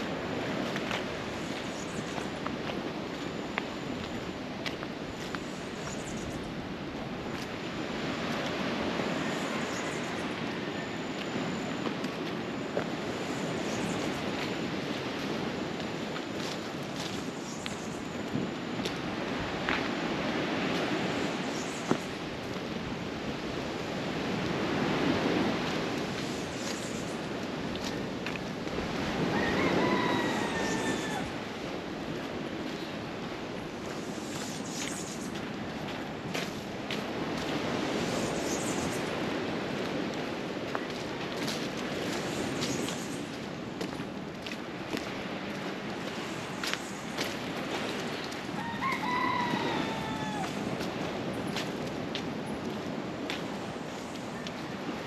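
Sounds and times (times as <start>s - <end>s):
rushing outdoor background: 0.0s - 55.0s
rooster crowing: 29.2s - 31.4s, 48.5s - 50.7s.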